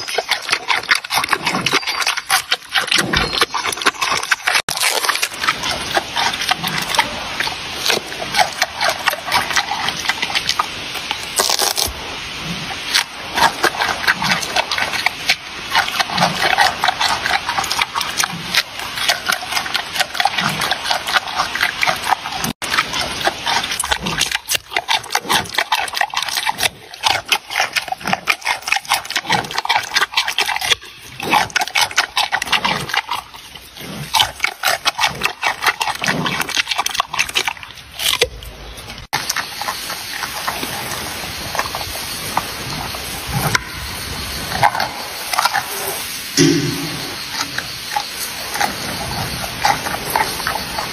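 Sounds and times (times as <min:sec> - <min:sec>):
crunching raw carrot: 0:00.0 - 0:43.7
panda chewing food: 0:44.3 - 0:50.9.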